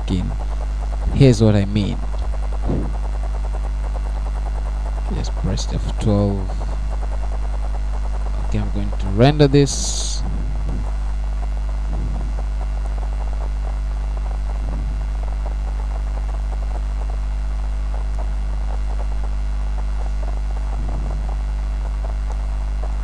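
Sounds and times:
electrical mains hum: 0:00.0 - 0:23.0.

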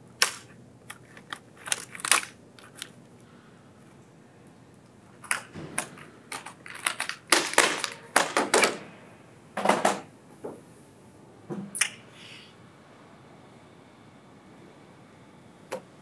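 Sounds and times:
sharp plastic clicks and clacks: 0:05.2 - 0:08.8.

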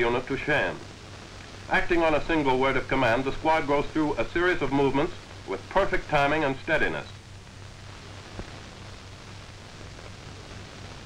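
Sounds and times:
film soundtrack hiss and hum: 0:00.0 - 0:11.0.

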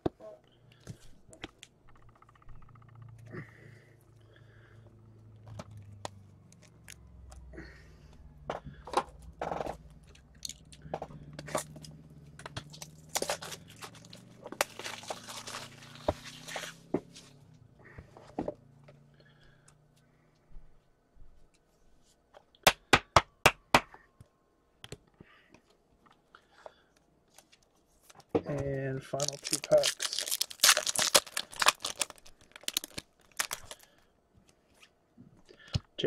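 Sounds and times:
packaging rustling and scraping: 0:12.6 - 0:17.4, 0:29.1 - 0:33.9.

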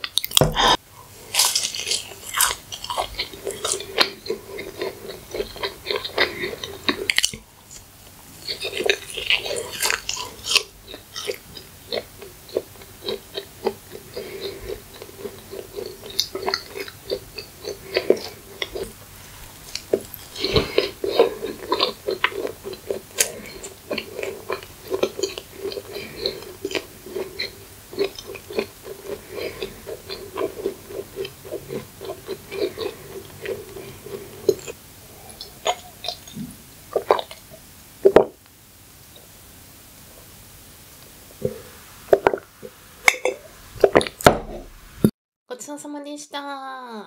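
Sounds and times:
biting into crisp crust: 0:00.0 - 0:34.8
chewing with wet mouth clicks: 0:01.4 - 0:19.0, 0:19.6 - 0:34.8, 0:35.4 - 0:37.4.

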